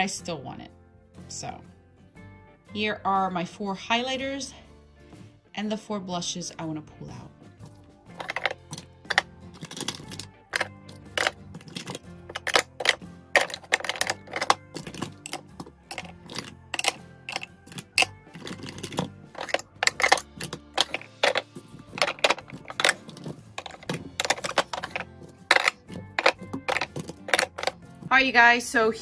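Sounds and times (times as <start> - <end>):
soft music: 0.0 - 29.0
plastic compacts clacking: 7.6 - 28.1.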